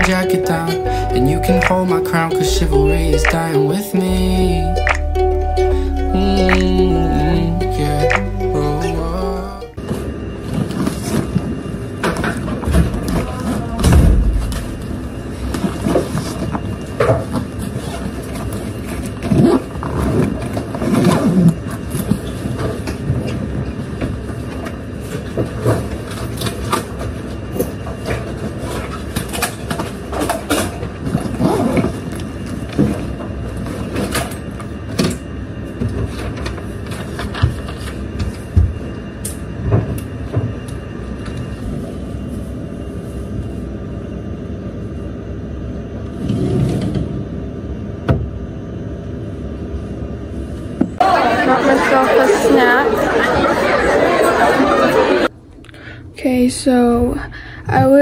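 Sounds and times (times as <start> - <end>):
steady low rumble: 0.0 - 9.8, 13.8 - 15.5.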